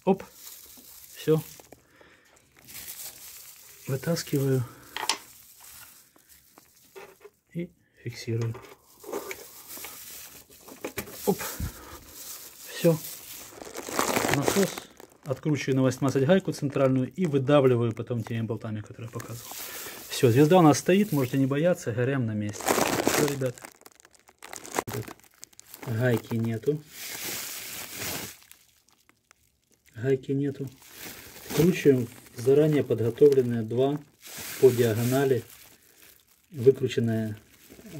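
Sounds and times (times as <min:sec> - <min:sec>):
plastic glove rustling: 0:00.0 - 0:07.5, 0:08.3 - 0:37.9.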